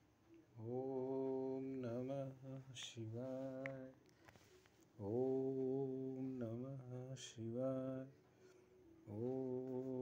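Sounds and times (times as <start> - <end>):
man chanting in a low voice: 0.6 - 4.0, 5.0 - 8.2, 9.0 - 10.0.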